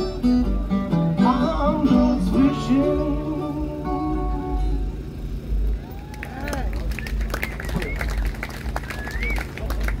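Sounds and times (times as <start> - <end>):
audience clapping and whooping: 5.8 - 10.0.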